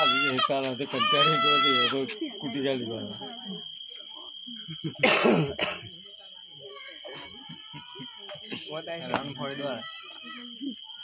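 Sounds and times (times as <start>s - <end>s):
person coughing: 5.0s - 5.8s.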